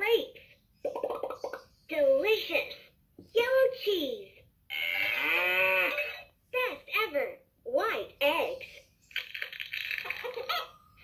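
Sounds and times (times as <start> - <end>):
toy recorded voice speaking: 0.0 - 8.8
recorded cow moo from toy: 4.7 - 6.2.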